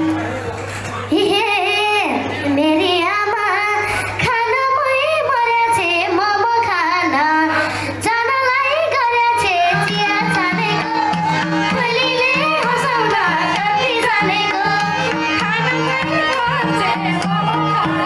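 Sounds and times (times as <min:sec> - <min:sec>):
girl singing into microphone: 0:01.1 - 0:18.0
band accompaniment: 0:09.5 - 0:18.0.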